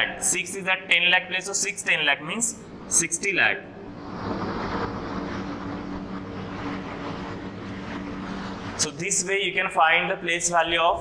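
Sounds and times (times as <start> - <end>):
mechanical drone with hiss: 1.2 - 11.0.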